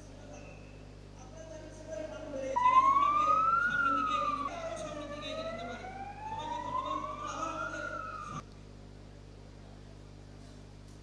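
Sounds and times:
wailing siren: 2.6s - 8.4s.

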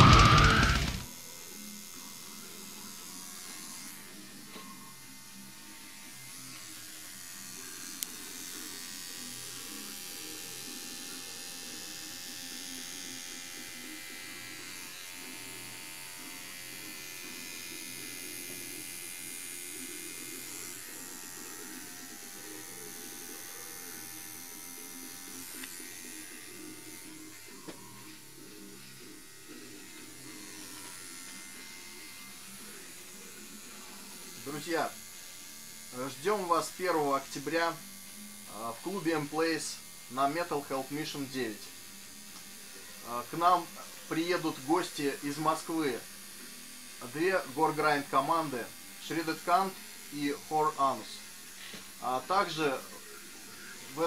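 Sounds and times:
tattoo machine buzzing: 0.0s - 54.0s.

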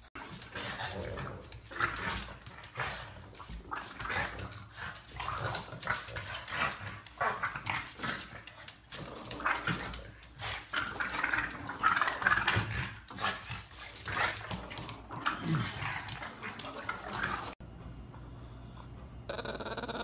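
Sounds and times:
dogs growling and grunting: 0.1s - 17.6s, 18.2s - 20.0s.

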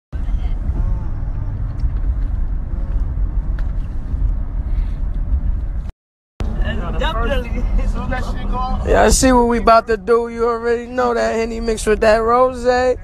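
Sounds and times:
car road and engine rumble: 0.1s - 13.0s.

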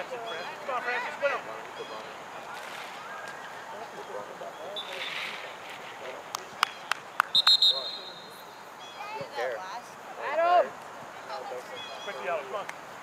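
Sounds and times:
referee's pea whistle blast: 7.3s - 8.4s.

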